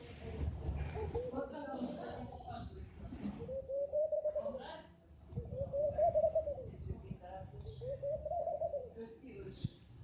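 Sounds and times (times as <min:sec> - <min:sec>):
dove cooing: 0:03.4 - 0:04.5, 0:05.4 - 0:06.7, 0:07.7 - 0:09.0.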